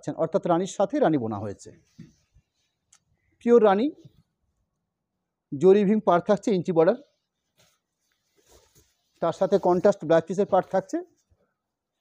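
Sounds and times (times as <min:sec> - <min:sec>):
soft fabric rustles: 0:01.4 - 0:03.3, 0:07.1 - 0:12.0.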